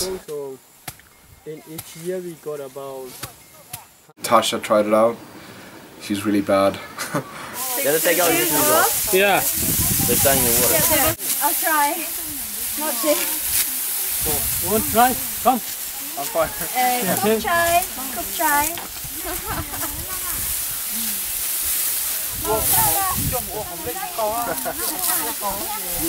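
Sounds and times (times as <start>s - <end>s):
steady hiss: 0.0s - 26.0s
voices talking: 1.2s - 26.0s.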